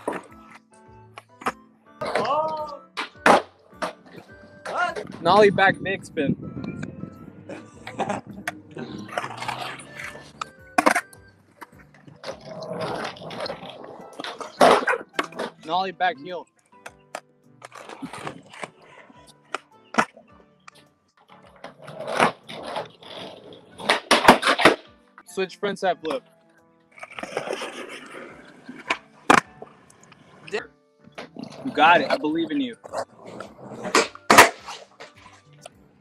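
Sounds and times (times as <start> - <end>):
skateboard rolling on ground: 0.0 - 2.3, 3.0 - 15.7, 16.8 - 20.2, 21.2 - 24.9, 26.9 - 36.0
quiet background music: 0.0 - 36.0
skateboard landing on concrete: 3.0 - 5.2, 33.8 - 35.3
skateboard snapping off ground: 3.0 - 5.2, 7.8 - 15.6, 23.8 - 24.9, 28.8 - 29.6, 33.3 - 35.4
skateboard clacks on pavement: 32.8 - 35.4.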